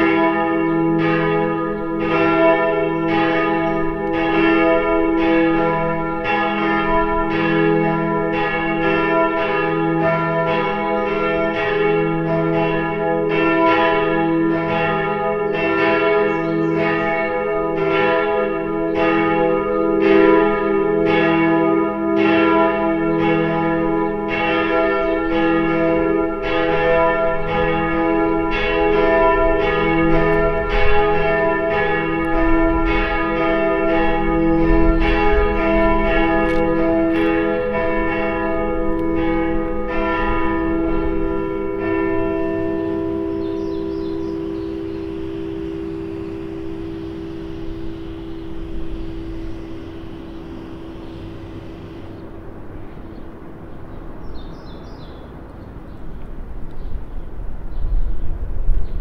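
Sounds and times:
church bells ringing: 0.0 - 57.8.

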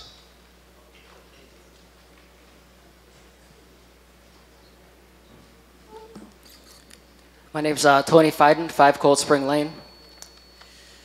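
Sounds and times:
steady low hum: 0.0 - 11.0
microphone handling squeak: 5.9 - 6.3.

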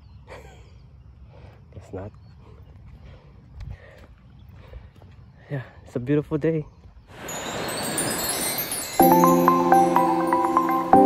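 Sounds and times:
shimmering chime-like swell: 7.1 - 11.0.

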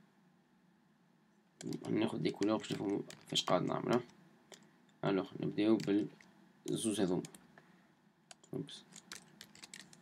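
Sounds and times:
man speaking: 1.6 - 4.1, 5.0 - 7.4, 8.5 - 9.0.

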